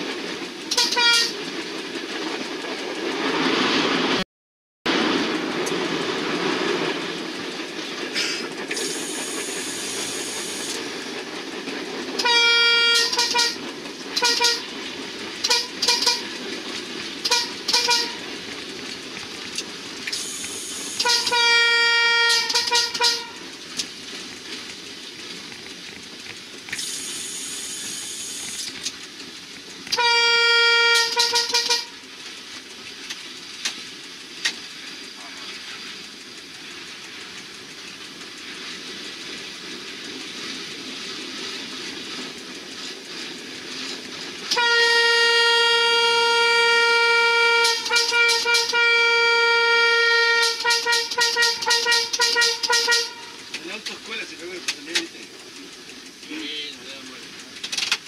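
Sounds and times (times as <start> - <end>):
train wheels on rails: 0.0 - 4.2, 4.9 - 58.0
train horn blasts: 0.7 - 1.4, 12.2 - 13.6, 14.2 - 14.7, 15.4 - 16.4, 17.2 - 18.2, 21.0 - 23.4, 29.9 - 32.0, 44.5 - 53.4.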